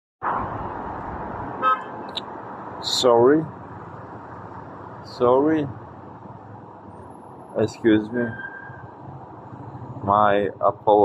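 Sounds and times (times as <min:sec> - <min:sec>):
outdoor background noise: 0:00.2 - 0:11.0.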